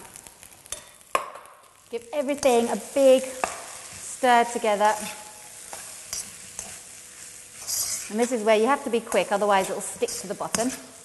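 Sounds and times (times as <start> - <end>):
rice sizzling in a hot wok: 0.0 - 11.0
spatula scraping a wok: 2.4 - 11.0.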